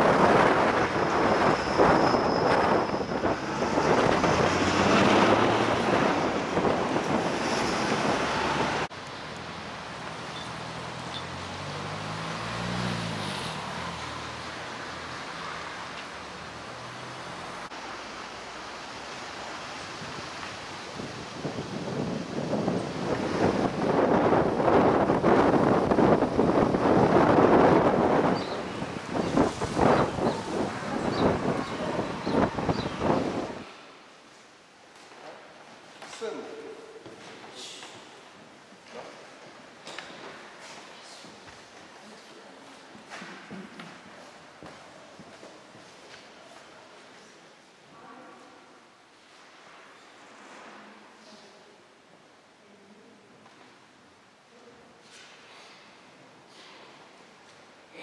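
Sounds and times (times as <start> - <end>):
gusty wind buffeting microphone: 0.0 - 8.9, 19.8 - 33.7
street traffic: 0.0 - 48.3
vehicle engine: 2.6 - 33.8.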